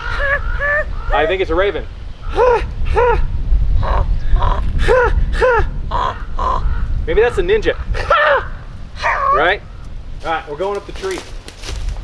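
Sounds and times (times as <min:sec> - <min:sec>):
raven cawing: 0:00.0 - 0:01.5, 0:03.8 - 0:04.9, 0:05.8 - 0:10.0.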